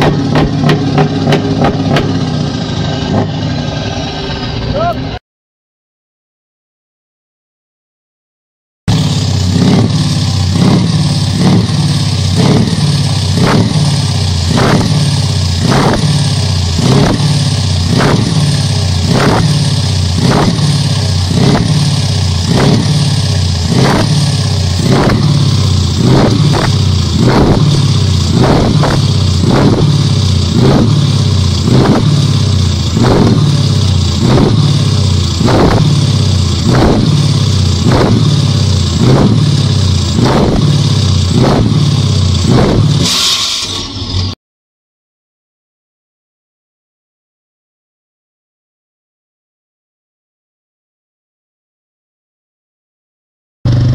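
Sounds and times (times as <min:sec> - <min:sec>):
diesel truck engine revving: 0:00.0 - 0:05.2, 0:08.9 - 0:44.4.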